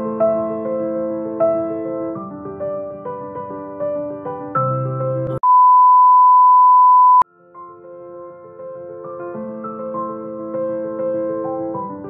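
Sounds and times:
soft piano music: 0.0 - 5.4, 7.3 - 12.0
high-pitched test-tone beep: 5.4 - 7.2.

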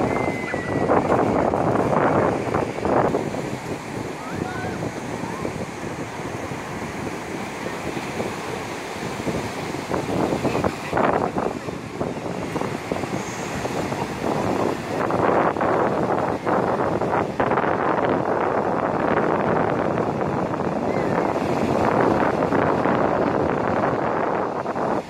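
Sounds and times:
ocean surf breaking: 0.0 - 25.0
wind buffeting microphone: 0.0 - 25.0.

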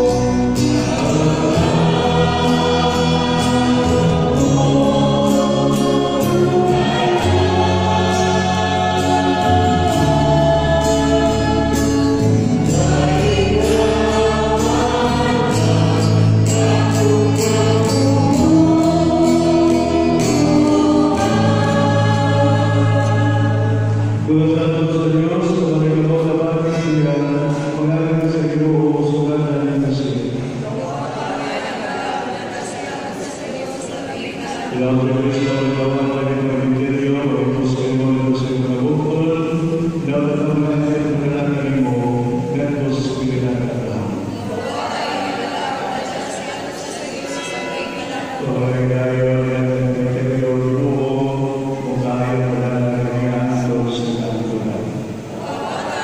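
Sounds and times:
group singing a hymn: 0.0 - 56.0
man chanting in a church: 23.6 - 31.0, 34.7 - 44.3, 48.4 - 55.4.

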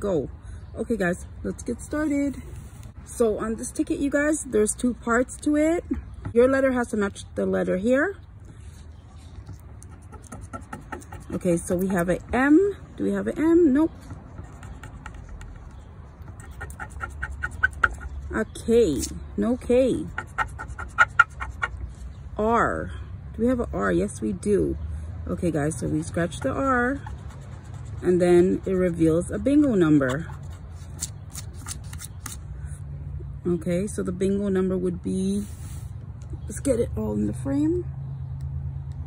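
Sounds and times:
scratcher scraping lottery ticket: 29.6 - 32.4.

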